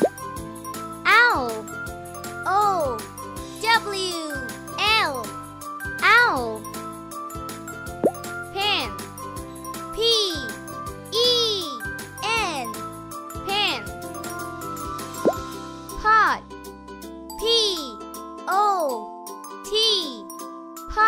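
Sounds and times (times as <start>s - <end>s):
light children's music: 0.0s - 21.0s
child calling out sing-song: 1.1s - 1.7s, 2.4s - 5.3s, 6.0s - 6.6s, 8.5s - 9.0s, 9.9s - 12.8s, 13.4s - 13.9s, 16.0s - 16.4s, 17.4s - 19.1s, 19.7s - 20.3s.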